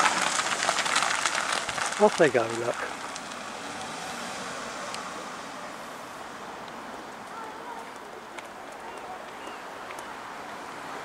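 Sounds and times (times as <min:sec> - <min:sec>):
distant road traffic: 0:00.0 - 0:11.0.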